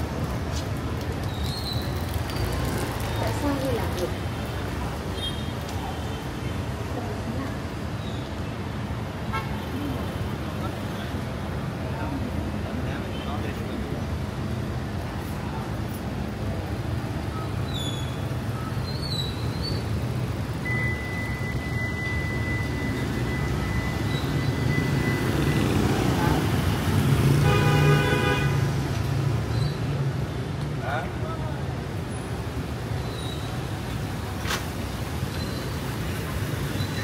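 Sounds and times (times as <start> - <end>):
vehicles passing on wet road: 0.0 - 37.0
vehicle horn: 27.4 - 28.6.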